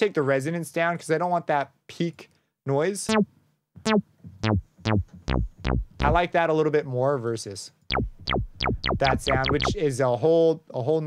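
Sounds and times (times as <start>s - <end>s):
synth pluck notes: 3.1s - 6.3s, 7.9s - 10.0s.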